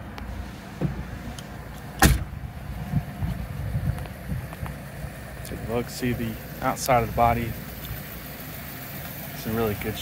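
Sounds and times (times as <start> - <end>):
car liftgate slamming shut: 2.0 - 2.4.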